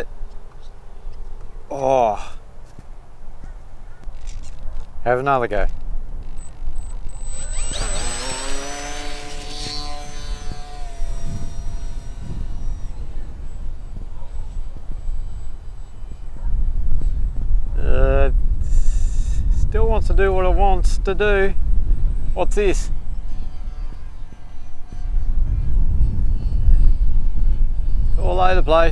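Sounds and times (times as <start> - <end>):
electric motor and propeller whine: 5.7 - 28.9.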